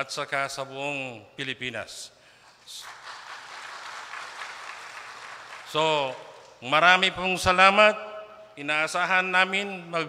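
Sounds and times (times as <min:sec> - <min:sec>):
crowd applauding: 0:02.8 - 0:06.5.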